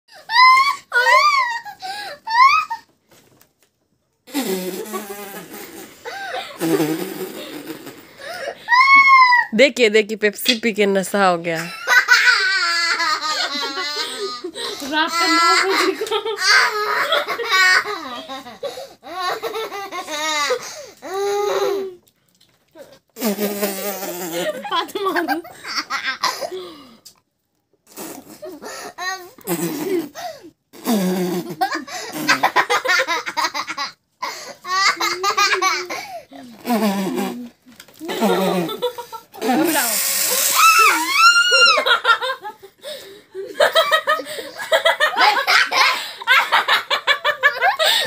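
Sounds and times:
girl laughing in high squeals: 0.1 - 2.9, 8.4 - 9.5, 39.7 - 42.3
girl laughing: 0.3 - 2.9, 11.6 - 20.6, 23.9 - 26.8, 37.4 - 39.9, 40.6 - 42.7, 43.4 - 48.0.

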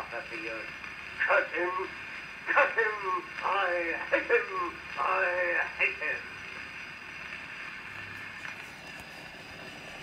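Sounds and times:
gramophone surface hiss: 0.0 - 10.0
faint record clicks: 8.0 - 9.3.

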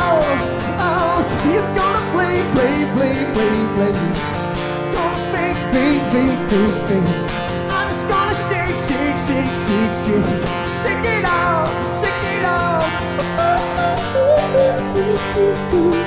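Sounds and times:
man singing wordless runs: 0.0 - 4.3, 4.9 - 13.3
acoustic guitar strumming: 0.0 - 16.0.

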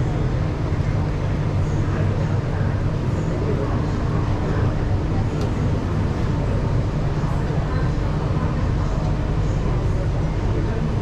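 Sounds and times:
train hum: 0.0 - 11.0.

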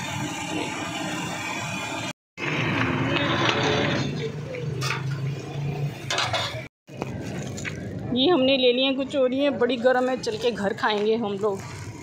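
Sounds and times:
oil sizzling and bubbling: 0.0 - 3.0
faint street noise: 0.0 - 12.0.

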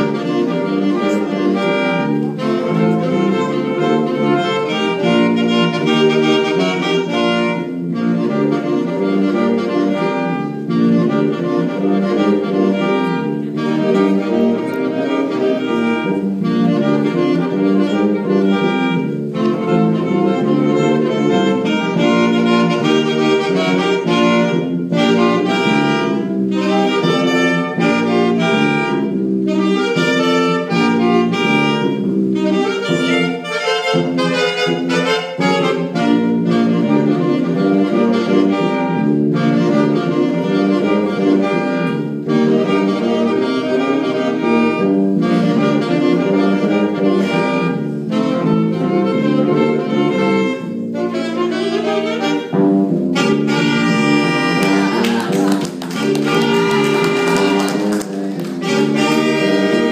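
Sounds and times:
saxophone ensemble playing: 0.0 - 59.9.

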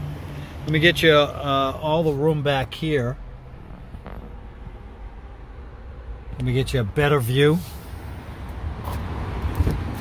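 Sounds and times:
low rumble: 3.2 - 6.4.

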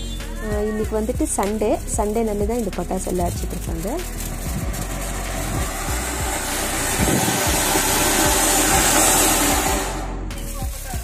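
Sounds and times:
ground fountain firework hissing: 0.0 - 11.0.

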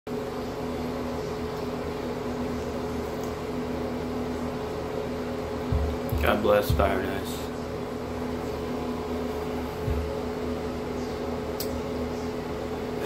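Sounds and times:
machine hum: 0.1 - 13.0.

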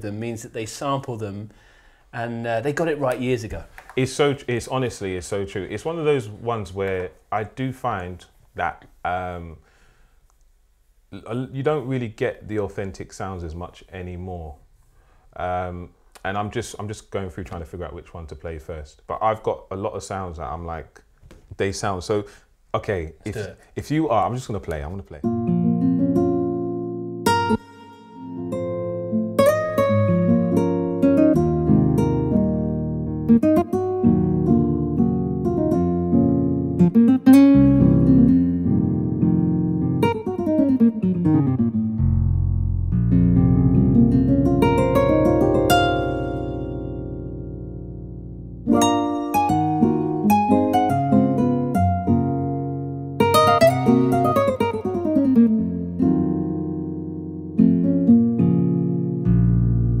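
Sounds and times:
synthesizer acoustic guitar chords: 25.2 - 60.0.

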